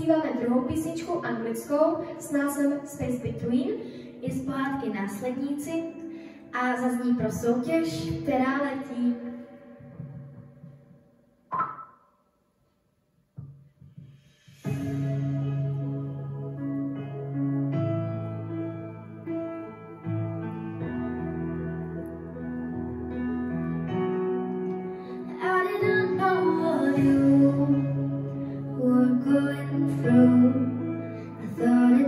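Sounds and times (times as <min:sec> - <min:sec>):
girl singing into microphone: 0:00.0 - 0:10.7, 0:25.0 - 0:32.0
single struck note ringing: 0:11.5 - 0:12.0
soft instrumental chords: 0:14.6 - 0:32.0.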